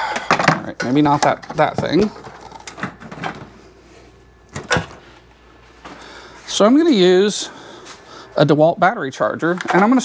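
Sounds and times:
objects knocking and clattering: 0.0s - 3.5s.

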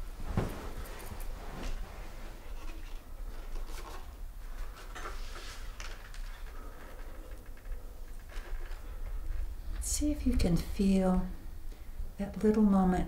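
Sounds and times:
soft rustles: 0.0s - 10.6s
steady low hum: 0.0s - 13.0s.

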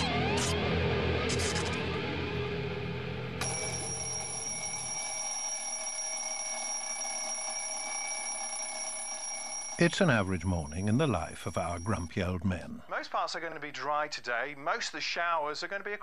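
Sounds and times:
music: 0.0s - 4.1s
alarm clock bells ringing: 3.4s - 12.7s.

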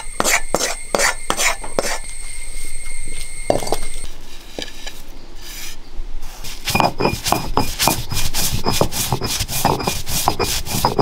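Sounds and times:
fingers scraping grated coconut: 5.4s - 11.0s.

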